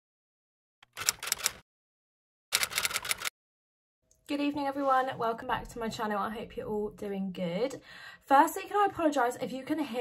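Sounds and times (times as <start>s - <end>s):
rapid keyboard key clicks: 0.8s - 1.6s, 2.5s - 3.3s.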